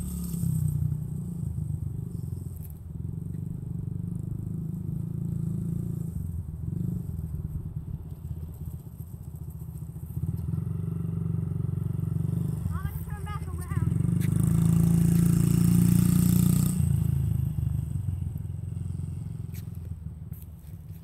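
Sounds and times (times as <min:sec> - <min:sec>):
dirt bike engine running: 0:00.0 - 0:21.0.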